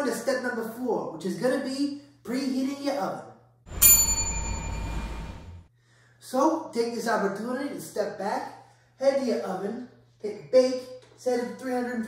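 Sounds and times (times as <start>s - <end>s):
bright bell-like ding: 3.7s - 5.6s
rushing noise: 3.7s - 5.7s.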